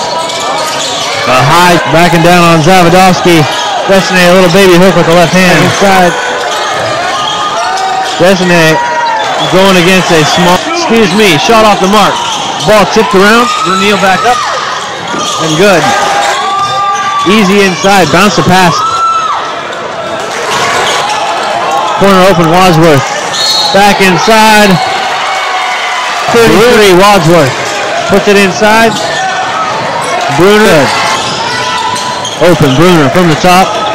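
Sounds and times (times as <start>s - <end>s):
gym crowd noise: 0.0s - 33.9s.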